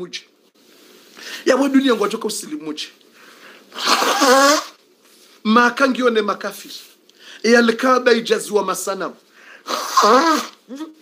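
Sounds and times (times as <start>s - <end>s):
man sneezing: 3.8s - 4.8s, 9.6s - 11.0s.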